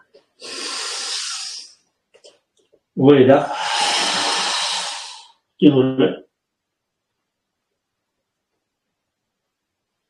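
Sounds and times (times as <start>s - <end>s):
man breathing in: 0.4s - 1.8s, 3.4s - 5.4s.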